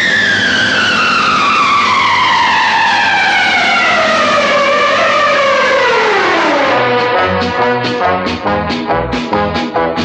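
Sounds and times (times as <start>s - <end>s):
falling whistle tone: 0.0s - 4.1s
rushing noise: 0.0s - 10.0s.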